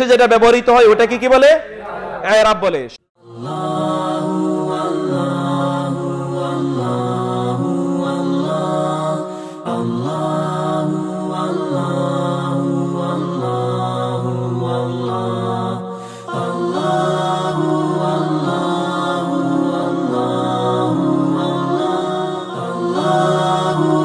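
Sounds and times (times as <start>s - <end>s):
chant-like vocal music: 3.2s - 24.0s.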